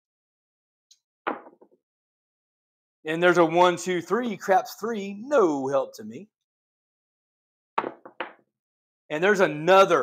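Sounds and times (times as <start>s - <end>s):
dice clattering on a table: 7.8s - 8.4s.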